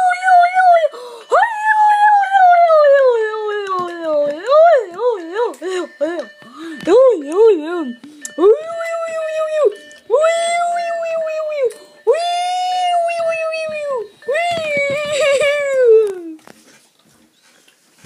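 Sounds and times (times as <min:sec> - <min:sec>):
person wailing calls: 0:00.0 - 0:16.4.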